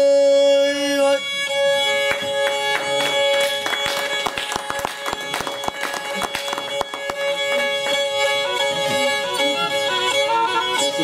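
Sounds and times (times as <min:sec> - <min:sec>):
bowed fiddle playing fast tune: 0:00.0 - 0:11.0
listeners clapping along: 0:02.0 - 0:08.1.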